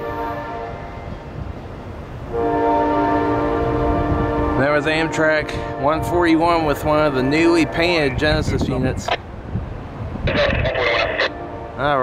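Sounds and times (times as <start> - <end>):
train air horn blasts: 0.0 - 1.1, 2.3 - 6.3, 7.1 - 8.1, 11.2 - 12.0
low rumble of passing train: 0.0 - 12.0.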